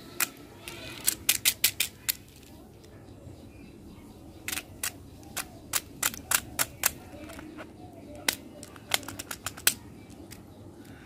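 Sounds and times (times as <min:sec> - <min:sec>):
plastic toy clicking: 0:00.1 - 0:02.5, 0:04.4 - 0:07.6, 0:08.2 - 0:10.5.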